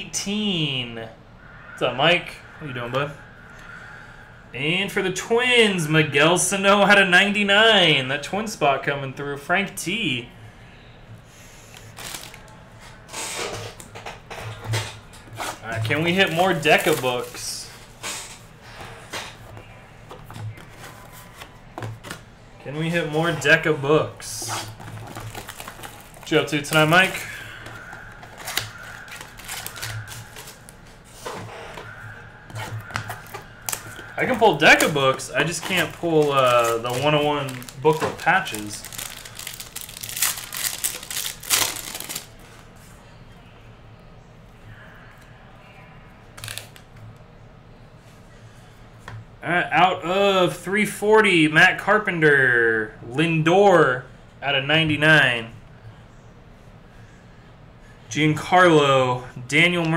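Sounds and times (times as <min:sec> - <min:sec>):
foil wrapper crinkling and tearing: 0:11.7 - 0:12.5, 0:15.8 - 0:17.4, 0:24.4 - 0:30.8, 0:32.9 - 0:42.4, 0:46.4 - 0:46.8.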